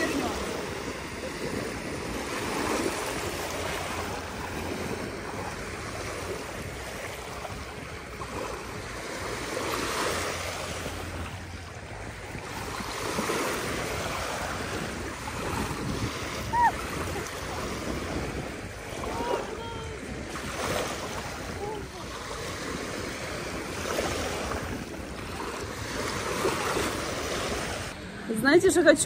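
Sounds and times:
small waves lapping at shore: 0:00.0 - 0:29.0.

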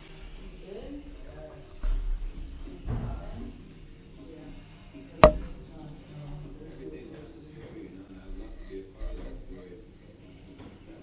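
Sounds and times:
sharp knock with ringing tail: 0:05.2 - 0:05.5.

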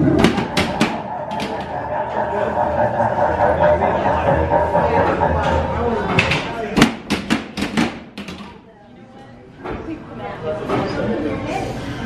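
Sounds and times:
people talking: 0:00.6 - 0:07.2
sharp knocks: 0:06.1 - 0:08.5.

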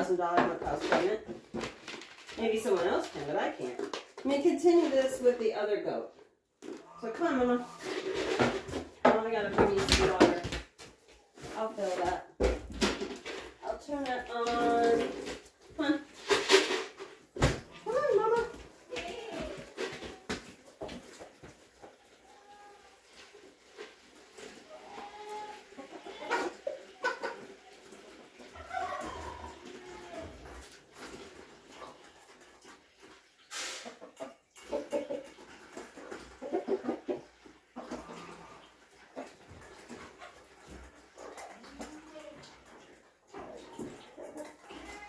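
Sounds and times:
faint domestic animal sounds: 0:17.7 - 0:45.0.

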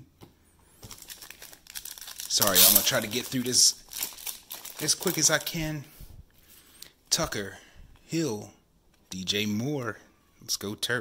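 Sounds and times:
plastic card sleeves crinkling: 0:00.8 - 0:05.6.

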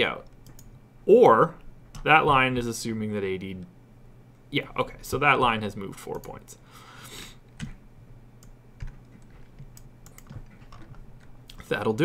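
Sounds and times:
keyboard and mouse clicks: 0:00.2 - 0:00.7, 0:08.4 - 0:11.7.

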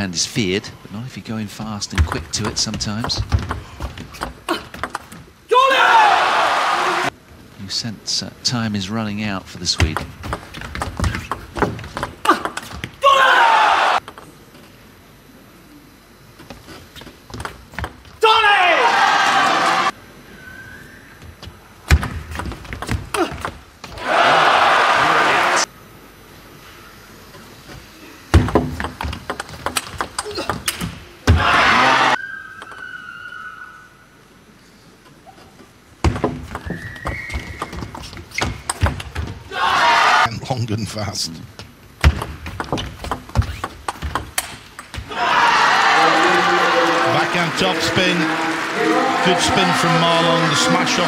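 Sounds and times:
crowd cheering and shouting: 0:05.5 - 0:07.1, 0:13.0 - 0:14.0, 0:18.2 - 0:19.9, 0:24.0 - 0:25.7, 0:31.3 - 0:32.2, 0:39.5 - 0:40.3, 0:45.0 - 0:51.0
table tennis ball clicking: 0:28.5 - 0:30.9.

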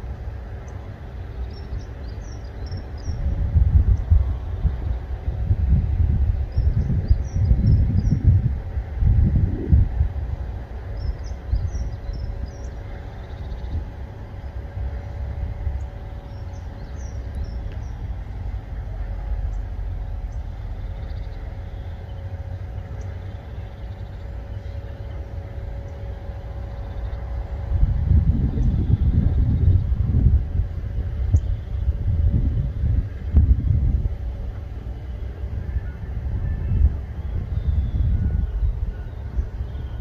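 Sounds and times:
hydraulic gear whine: 0:00.0 - 0:40.0
truck engine rumbling: 0:00.0 - 0:40.0.

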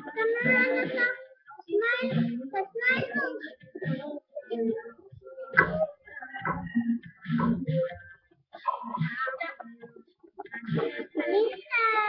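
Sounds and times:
child singing: 0:00.0 - 0:08.0, 0:10.7 - 0:12.0.

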